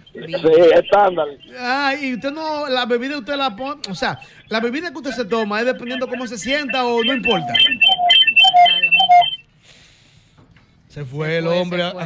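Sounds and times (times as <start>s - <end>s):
rapid high telephone beeps: 0.0s - 2.4s, 3.9s - 9.4s.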